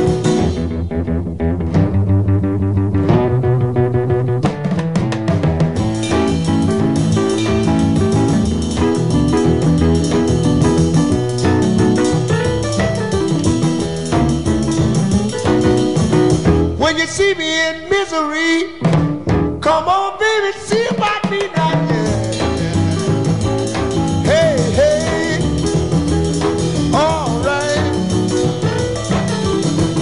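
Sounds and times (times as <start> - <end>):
electric piano: 0.0 - 17.4, 21.8 - 30.0
bass and drums: 0.0 - 17.8, 18.6 - 20.0, 20.6 - 30.0.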